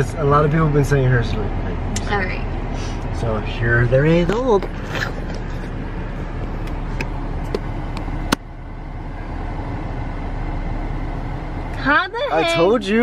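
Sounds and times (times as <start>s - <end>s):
car cabin rumble: 0.0s - 13.0s.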